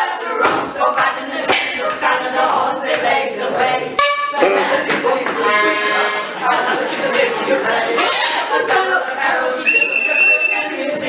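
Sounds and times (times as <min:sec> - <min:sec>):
women singing together: 0:00.0 - 0:11.0.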